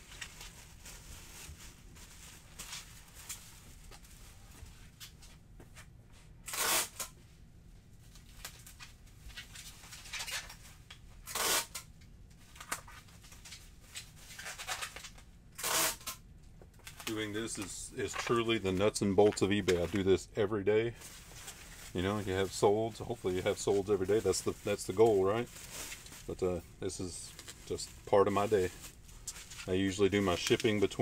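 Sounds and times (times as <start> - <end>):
bubble wrap rustling and crinkling: 0.0 - 5.4, 8.0 - 11.8, 12.4 - 16.1, 16.8 - 31.0
loud tearing sound: 6.4 - 7.1, 11.2 - 11.8, 15.6 - 16.2.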